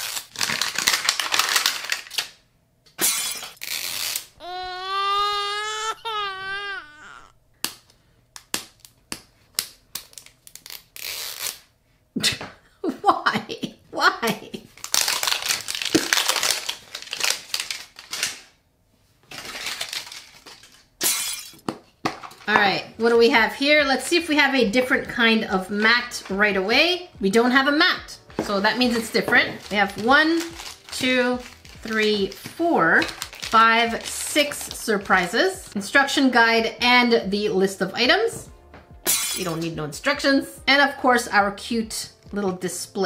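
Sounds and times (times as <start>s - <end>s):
tape peeling: 0.0s - 2.3s, 3.0s - 7.2s, 9.9s - 11.6s
plastic wrapper crackling: 0.0s - 2.4s, 3.3s - 4.7s, 9.9s - 11.6s, 14.8s - 18.4s, 19.3s - 20.9s, 28.4s - 35.5s.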